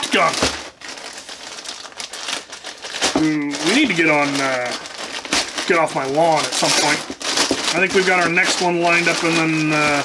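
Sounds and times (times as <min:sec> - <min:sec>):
plastic bag rustling and crinkling: 0:00.0 - 0:10.0.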